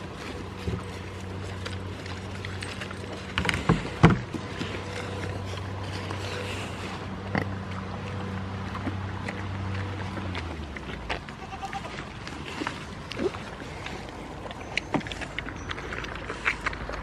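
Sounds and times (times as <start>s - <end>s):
goats chewing: 0.0s - 17.0s
low steady hum: 0.0s - 17.0s.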